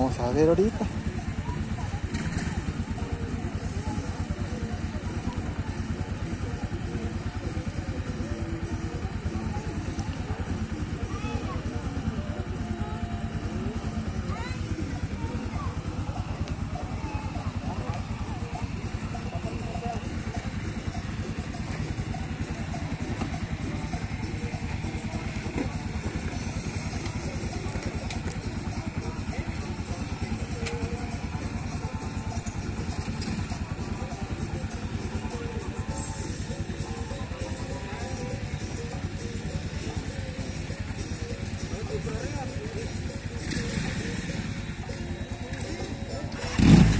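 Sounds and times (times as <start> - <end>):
motorcycle engines idling: 0.0 - 46.9
voices: 0.0 - 46.9.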